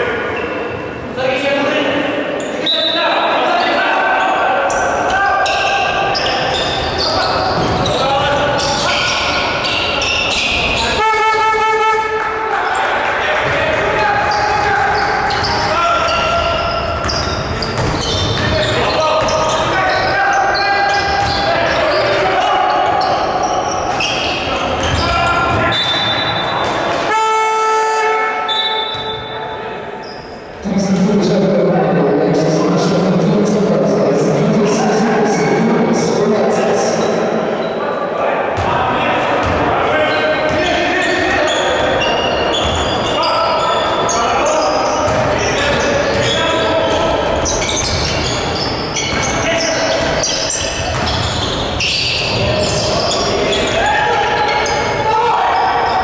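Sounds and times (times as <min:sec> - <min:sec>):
players' voices: 0:00.0 - 0:56.0
shoe squeaks: 0:02.4 - 0:11.5, 0:14.3 - 0:30.5, 0:40.0 - 0:56.0
basketball bouncing: 0:13.4 - 0:19.6, 0:24.7 - 0:26.0, 0:45.0 - 0:46.4, 0:50.8 - 0:52.4.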